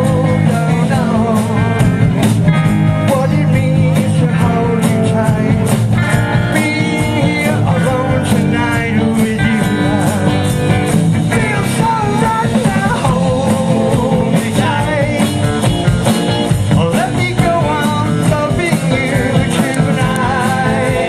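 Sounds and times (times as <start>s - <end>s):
bass guitar: 0.0s - 21.0s
drum kit: 0.0s - 21.0s
electric guitars: 0.0s - 21.0s.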